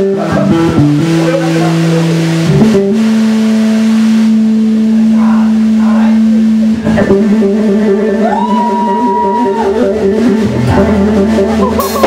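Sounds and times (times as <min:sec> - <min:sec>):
electric guitar holding long note: 0:00.0 - 0:12.0.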